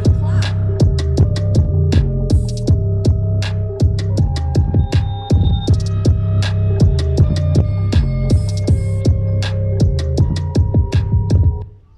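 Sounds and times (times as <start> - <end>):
deep sliding bass notes: 0.0 - 11.6
hip-hop instrumental on speaker: 0.0 - 11.8
hi-hat and snare clicks: 3.4 - 11.5.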